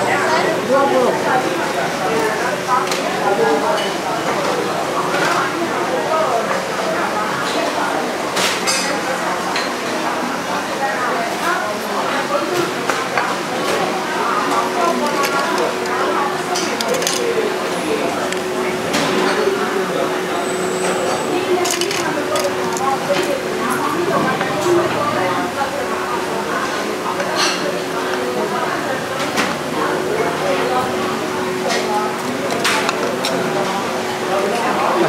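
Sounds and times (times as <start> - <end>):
diners chattering: 0.0 - 35.0
crockery and cutlery clinking: 14.5 - 17.5, 20.8 - 24.8.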